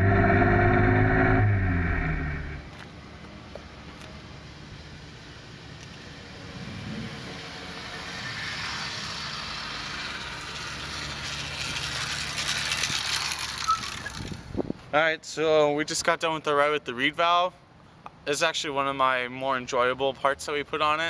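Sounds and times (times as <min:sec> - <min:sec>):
two-stroke engine humming: 0:09.1 - 0:14.3.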